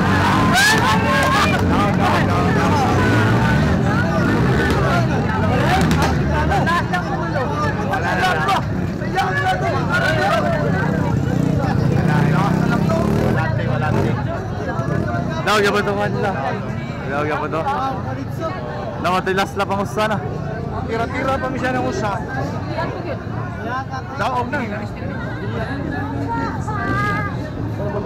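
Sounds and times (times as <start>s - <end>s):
motocross bikes running: 0.0s - 23.6s
people talking: 0.0s - 28.0s.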